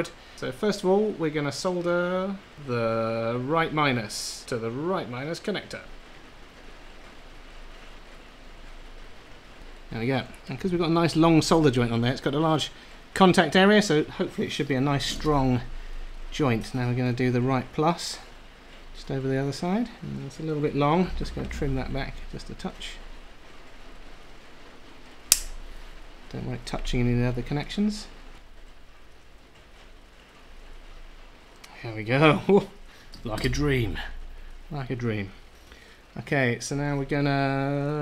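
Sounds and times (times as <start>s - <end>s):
rain on a roof: 0.0s - 38.0s
wire cutters snipping wire: 25.3s - 25.6s.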